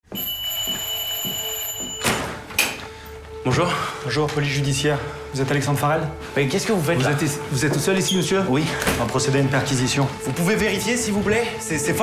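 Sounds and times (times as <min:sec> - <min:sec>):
electric doorbell ringing: 0:00.1 - 0:02.4.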